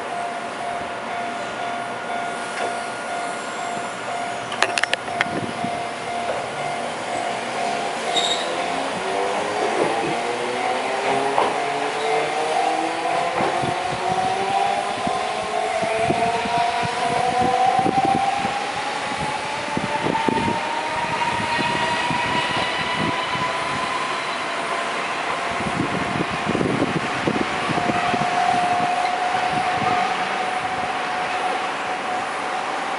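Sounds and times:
tram motor whine: 0.0s - 32.9s.

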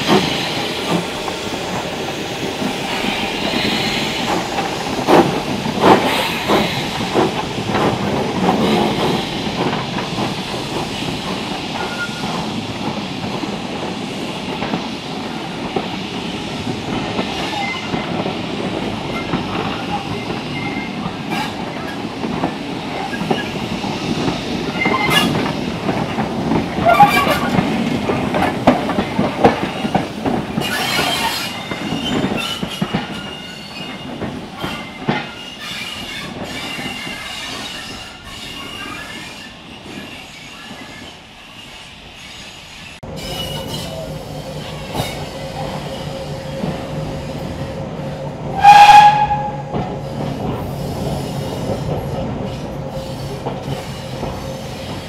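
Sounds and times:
steam train rumbling past: 0.0s - 55.0s.

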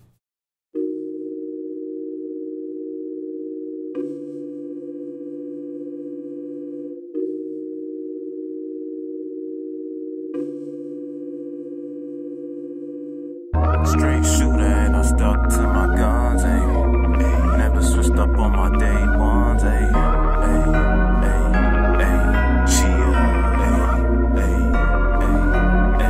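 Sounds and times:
synthesizer chords: 13.3s - 26.0s.

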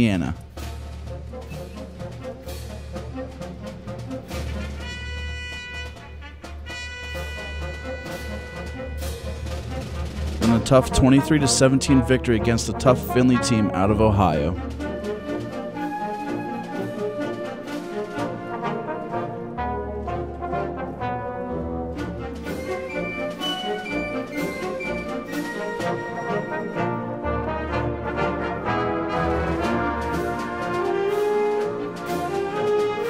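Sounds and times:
trumpets and trombones playing: 2.2s - 33.0s.

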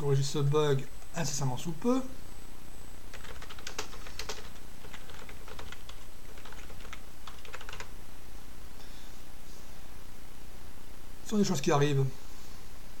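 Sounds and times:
computer keyboard typing: 3.1s - 7.9s.

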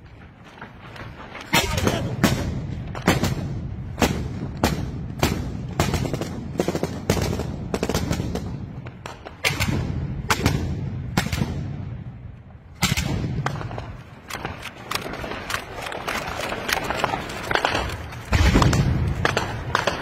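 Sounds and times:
sharp gunshots: 9.3s - 11.9s, 17.5s - 20.0s.

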